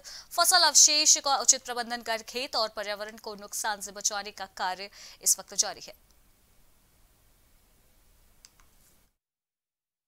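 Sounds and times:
faint steady hiss: 0.0 - 9.2.

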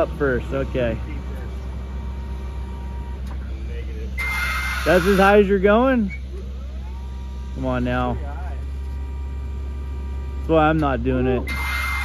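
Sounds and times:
hydraulic pump motor humming: 0.0 - 12.0.

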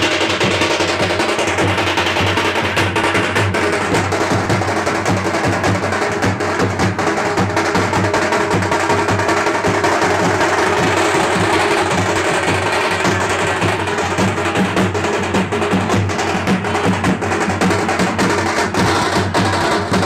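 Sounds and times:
fast live drums: 0.0 - 20.0.

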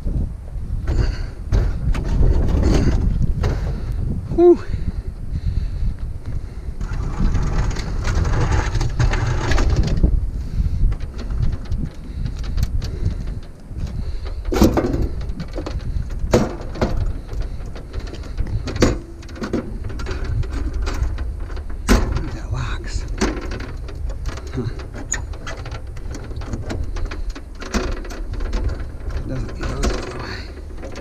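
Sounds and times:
steady low rumble: 0.0 - 31.0
vending machine scraping: 6.8 - 11.6, 14.0 - 31.0.

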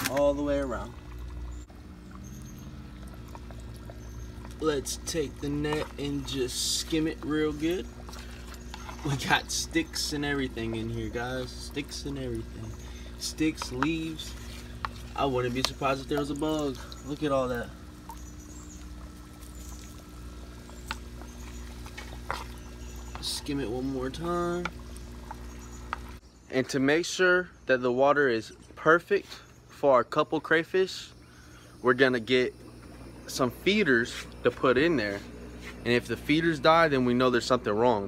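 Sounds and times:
water trickling and splashing: 0.0 - 26.2, 30.4 - 38.0
pond filter humming: 0.0 - 38.0.

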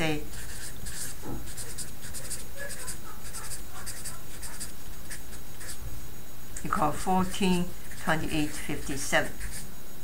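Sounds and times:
marker scratching on paper: 0.0 - 5.8, 6.6 - 9.7.

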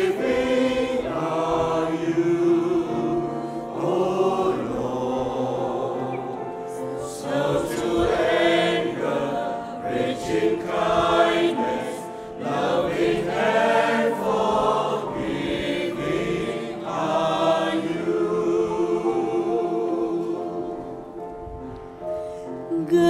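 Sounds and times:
choir singing a hymn: 0.0 - 23.0.

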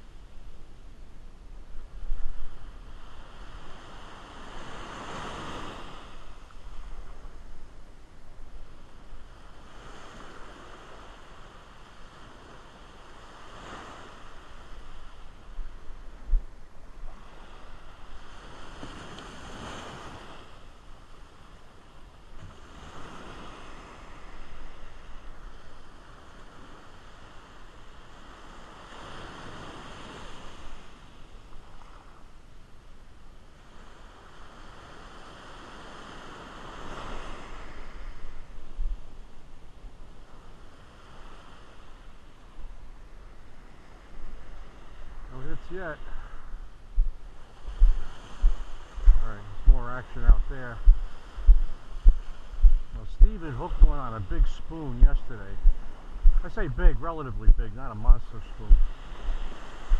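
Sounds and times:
wind buffeting the microphone: 0.0 - 11.4, 13.5 - 20.5, 41.0 - 57.6, 58.6 - 59.9
surf breaking on a beach: 0.0 - 59.9.

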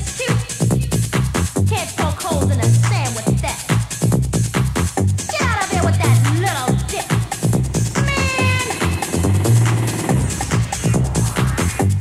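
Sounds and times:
electronic dance beat: 0.0 - 12.0
high synth note sliding down: 7.5 - 11.7.

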